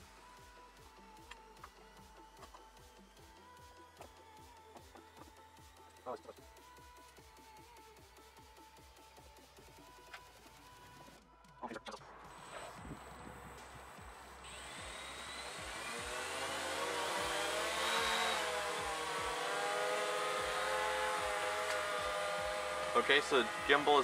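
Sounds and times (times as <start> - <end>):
drone propellers whirring: 12.1 - 24.0.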